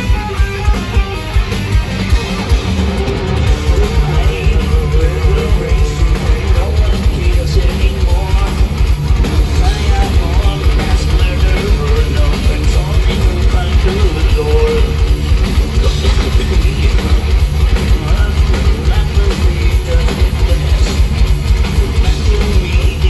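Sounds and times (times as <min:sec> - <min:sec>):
distorted electric guitars: 0:00.0 - 0:23.0
fast driving drums: 0:00.0 - 0:23.0.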